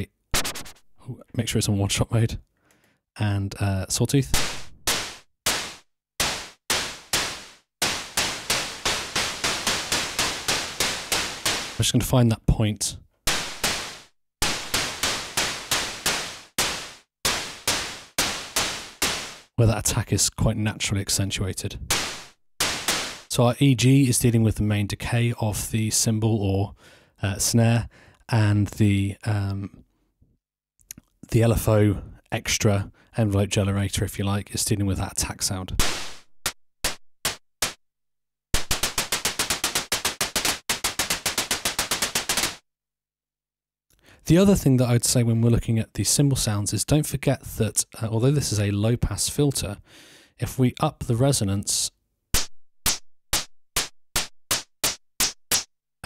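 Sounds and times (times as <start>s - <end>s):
synthesiser noise snare hits: 0.3s - 0.8s, 4.3s - 12.0s, 13.3s - 19.6s, 21.9s - 23.3s, 35.8s - 37.8s, 38.6s - 42.6s.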